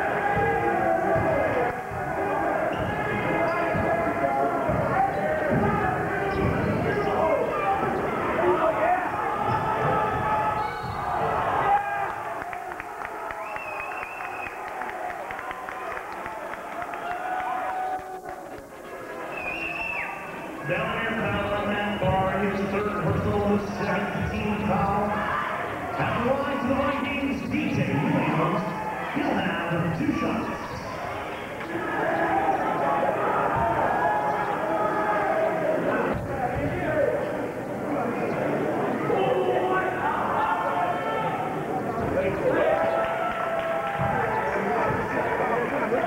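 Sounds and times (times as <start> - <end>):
crowd voices: 0.0 - 46.0.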